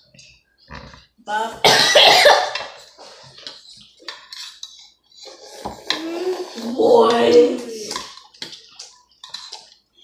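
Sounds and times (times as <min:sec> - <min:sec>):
forks and spoons clinking on bowls: 0:02.3 - 0:10.0.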